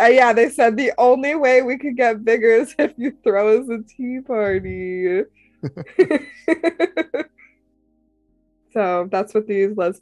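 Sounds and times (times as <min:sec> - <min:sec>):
person laughing: 0:04.5 - 0:04.8, 0:05.6 - 0:07.4.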